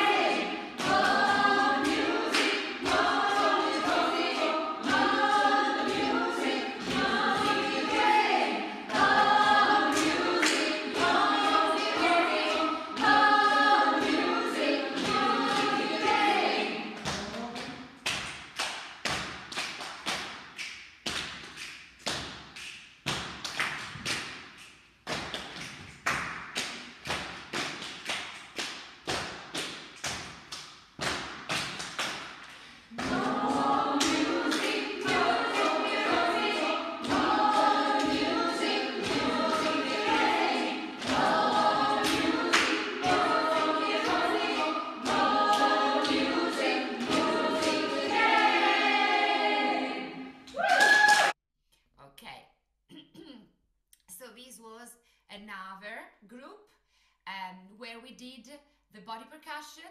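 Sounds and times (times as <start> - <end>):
group singing: 0.0 - 17.3, 32.9 - 50.6
hand claps and body percussion: 0.0 - 51.4.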